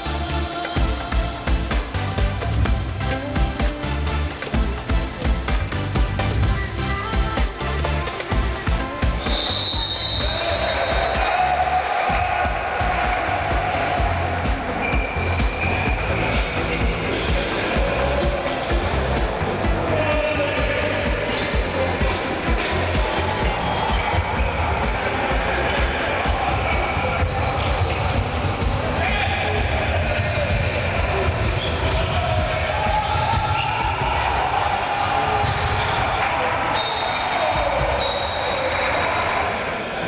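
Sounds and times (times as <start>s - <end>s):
music: 0.0s - 40.0s
voices: 6.6s - 40.0s.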